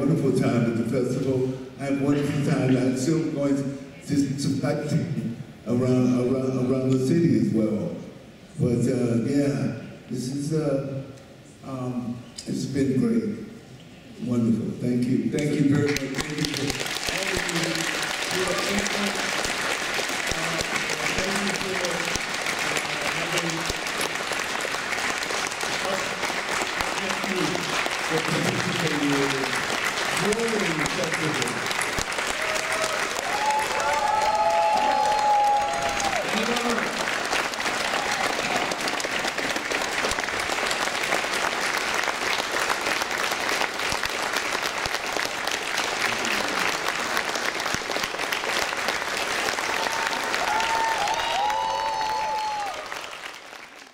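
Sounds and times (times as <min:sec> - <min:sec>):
audience applauding: 0:15.7 - 0:53.9.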